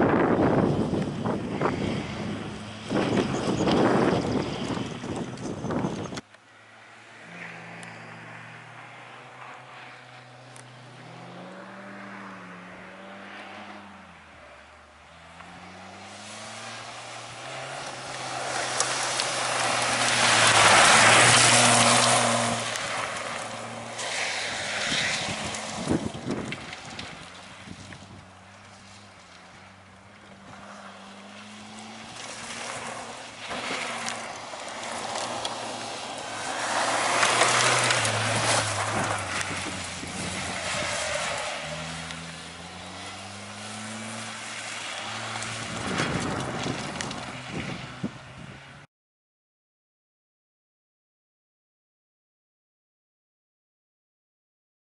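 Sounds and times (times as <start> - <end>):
tyres sliding on gravel: 15.3 - 48.0.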